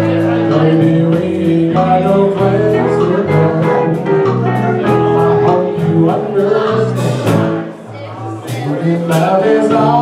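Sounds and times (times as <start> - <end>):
bass notes: 0.0 - 10.0
electric guitar: 0.0 - 10.0
live dance band playing: 0.0 - 10.0
drums with cymbal strokes: 3.6 - 7.8, 8.4 - 10.0.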